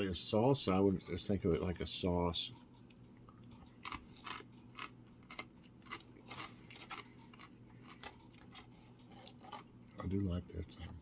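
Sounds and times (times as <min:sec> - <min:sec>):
man chewing crunchy chip: 0:03.4 - 0:10.0.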